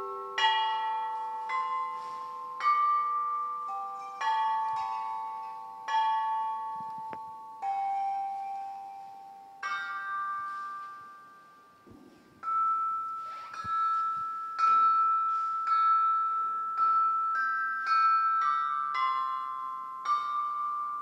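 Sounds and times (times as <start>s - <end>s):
chime bells struck: 0.0s - 21.0s.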